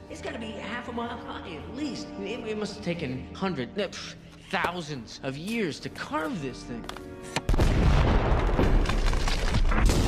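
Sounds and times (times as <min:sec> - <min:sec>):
film score: 0:00.0 - 0:10.0
explosion rumbling with cracks: 0:07.5 - 0:10.0.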